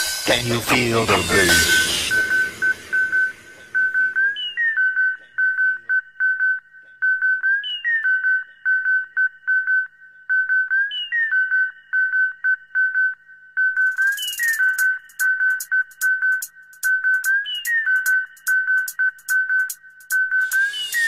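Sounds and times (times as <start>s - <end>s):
high-pitched synth lead: 0.0s - 5.0s, 20.4s - 21.0s.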